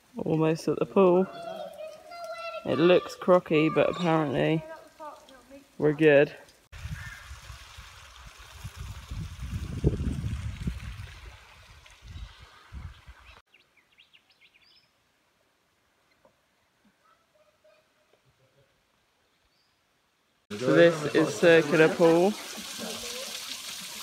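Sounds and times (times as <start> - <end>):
water trickling over rocks: 1.3 - 3.4, 4.0 - 13.2, 20.5 - 24.0.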